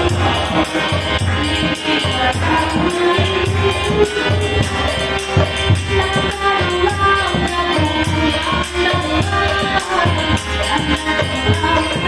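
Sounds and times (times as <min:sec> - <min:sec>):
violin: 0:00.0 - 0:12.0
voices singing: 0:00.0 - 0:12.0.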